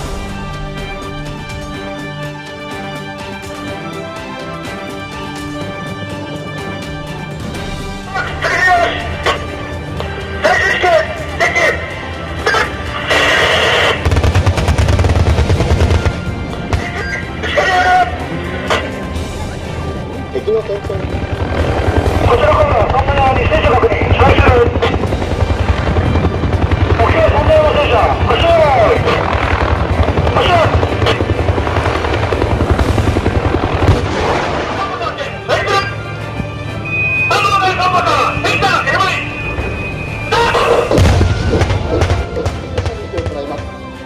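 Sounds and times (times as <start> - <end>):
background music: 0.0 - 44.0
helicopter rotor beating: 0.0 - 44.0
autocannon firing burst: 13.6 - 16.8.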